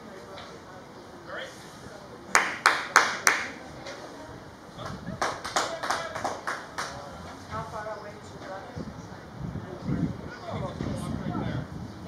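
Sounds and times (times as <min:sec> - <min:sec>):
hand clapping: 0:02.3 - 0:04.0, 0:04.8 - 0:07.0.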